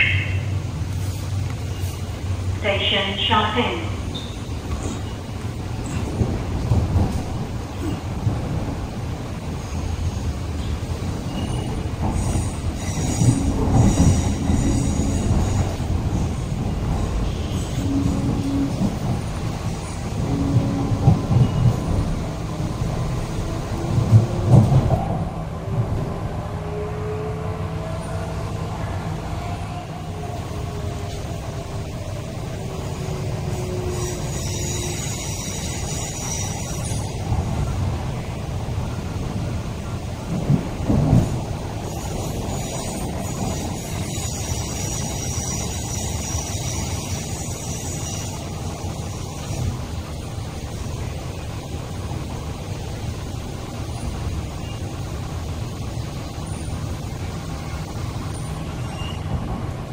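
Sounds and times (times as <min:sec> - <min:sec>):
train wheels rumbling on track: 0:00.0 - 0:59.9
high wheel squeal: 0:11.3 - 0:15.8, 0:33.6 - 0:37.2, 0:41.9 - 0:48.6, 0:58.3 - 0:59.4.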